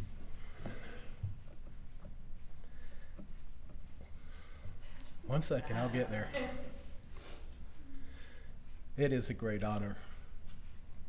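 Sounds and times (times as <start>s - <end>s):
low steady hum: 0.0s - 11.0s
man sniffling and breathing: 0.3s - 1.3s, 2.6s - 5.2s, 6.8s - 8.9s.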